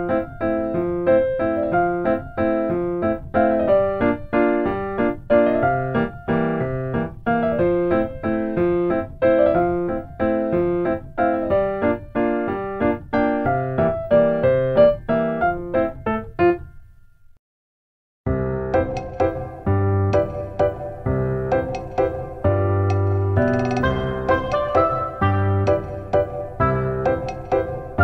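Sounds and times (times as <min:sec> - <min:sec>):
solo piano waltz: 0:00.0 - 0:16.8, 0:18.3 - 0:28.0.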